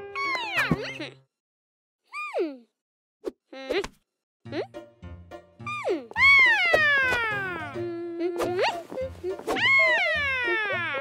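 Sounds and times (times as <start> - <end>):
light background music: 4.4 - 11.0.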